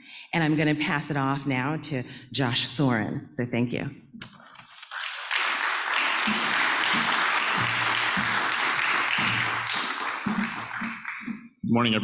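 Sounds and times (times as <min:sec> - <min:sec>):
audience applauding: 0:04.8 - 0:11.4.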